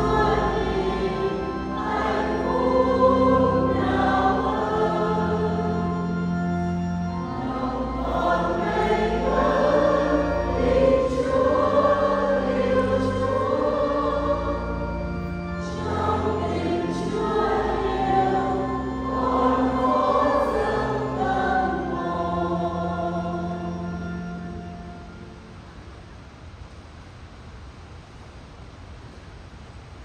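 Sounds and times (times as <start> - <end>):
choir singing a hymn: 0.0 - 25.3.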